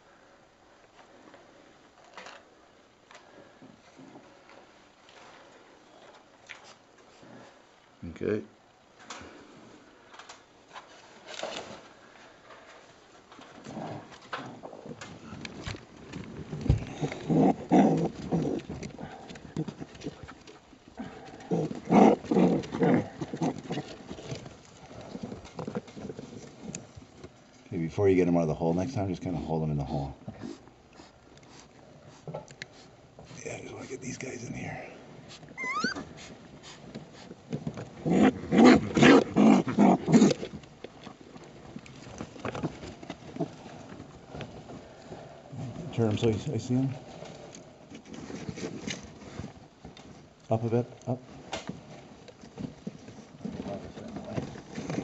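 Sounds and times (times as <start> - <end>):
rustling in loose insulation: 9.4 - 55.0
baby raccoons crying: 35.5 - 36.3.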